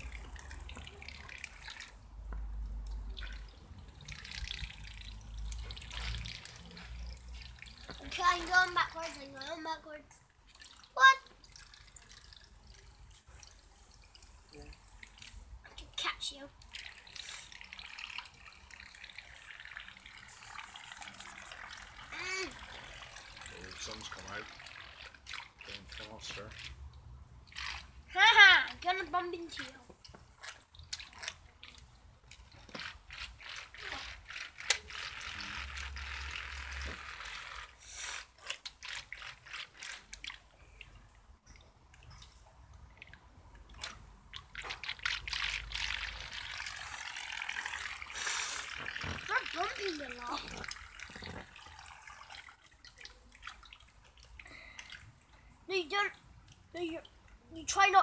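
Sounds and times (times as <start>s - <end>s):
water splashing and trickling: 0.0s - 58.0s
child calling out: 22.1s - 22.6s.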